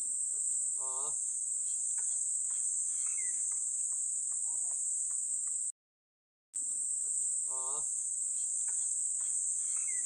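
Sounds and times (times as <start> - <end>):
crickets chirring: 0.1 - 5.7, 6.8 - 10.0.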